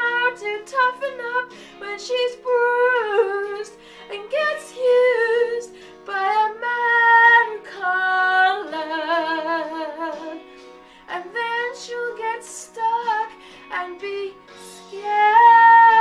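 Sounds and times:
low musical accompaniment: 0.0s - 16.0s
woman singing a slow ballad: 0.0s - 16.0s.

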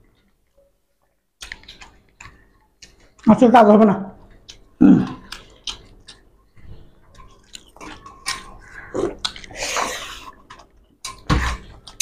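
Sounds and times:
chewing and mouth clicks: 1.4s - 3.3s, 4.2s - 12.0s.

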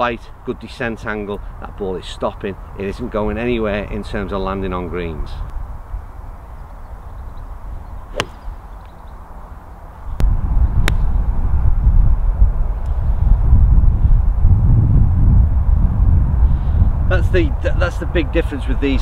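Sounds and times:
wind buffeting microphone: 1.4s - 9.4s, 10.0s - 19.0s
golf club striking ball: 8.1s - 8.9s.

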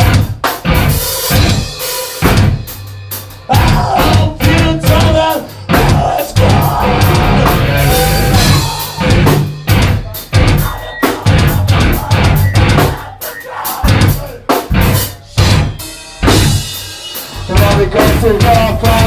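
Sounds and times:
metal band playing live: 0.0s - 19.0s.

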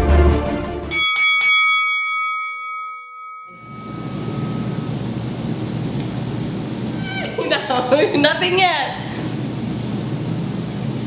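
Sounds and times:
ringing bell: 0.9s - 5.6s
room noise: 3.2s - 11.0s.

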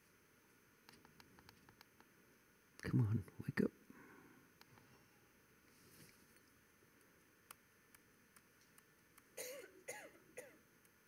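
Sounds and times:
person clearing throat: 9.4s - 10.6s.

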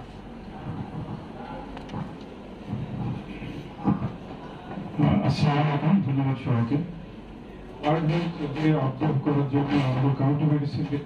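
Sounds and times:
microphone handling noise: 0.6s - 4.3s.

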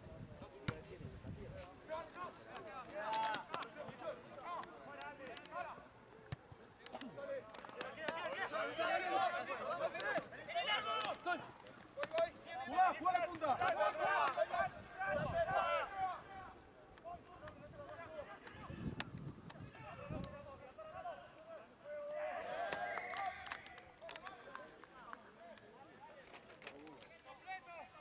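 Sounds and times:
people shouting: 8.2s - 11.5s, 12.6s - 16.5s.

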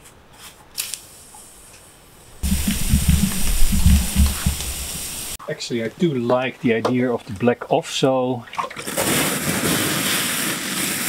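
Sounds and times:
hot metal sizzling on wet concrete: 0.4s - 5.4s, 8.9s - 11.0s.

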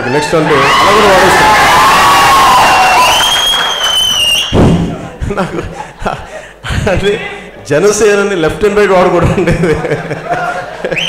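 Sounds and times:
crowd cheering and shouting: 0.0s - 3.6s
shrill whistle: 2.6s - 4.6s
thump: 4.6s - 5.0s.

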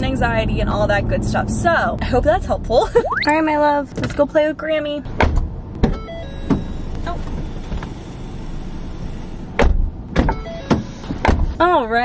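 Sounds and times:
car door shutting: 5.1s - 11.6s.

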